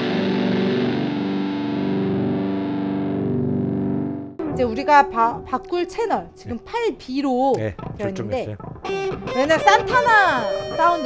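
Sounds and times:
distorted electric guitar: 0:00.0 - 0:11.0.

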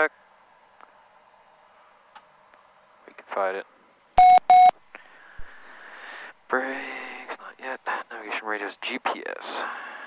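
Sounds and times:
short loud alert beeps: 0:04.2 - 0:04.7.

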